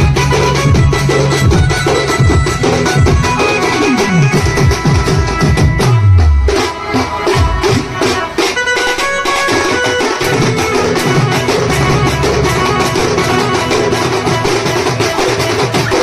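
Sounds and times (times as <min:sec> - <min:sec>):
band of stick-beaten drums: 0:00.0 - 0:16.0
melody line: 0:10.3 - 0:15.9
low notes sliding down: 0:10.4 - 0:15.6.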